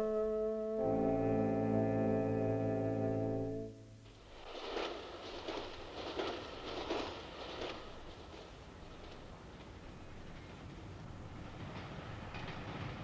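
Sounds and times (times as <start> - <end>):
theme music held chord: 0.0 - 4.0
train wheels clattering on tracks: 4.0 - 13.0.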